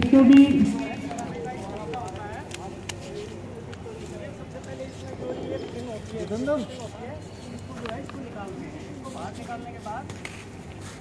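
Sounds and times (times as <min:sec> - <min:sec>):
background chatter of people: 0:00.0 - 0:11.0.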